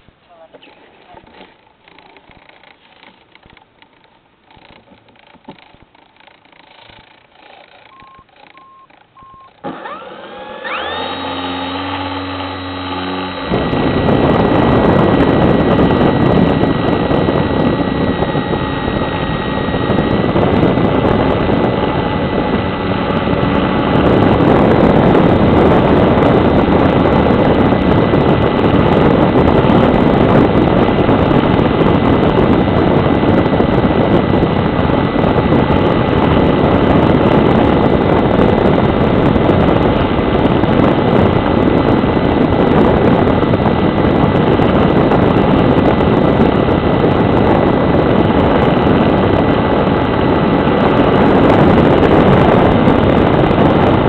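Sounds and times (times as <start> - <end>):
model aeroplane motor and propeller: 0.4 - 54.0
wind rush: 9.9 - 54.0.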